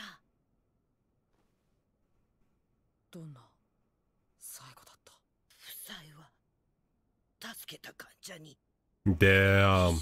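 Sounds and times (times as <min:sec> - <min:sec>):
faint cartoon dialogue: 0:07.4 - 0:10.0.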